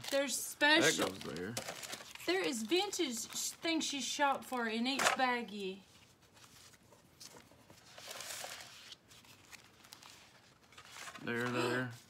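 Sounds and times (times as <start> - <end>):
paper sheets rustling: 5.0 - 12.0.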